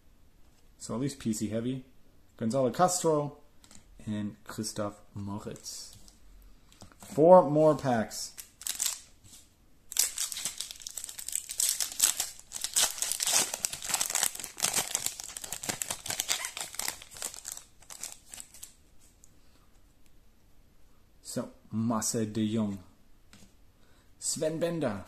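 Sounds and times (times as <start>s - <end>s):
foil pack crinkling and tearing: 8.4s - 9.0s, 9.9s - 18.7s.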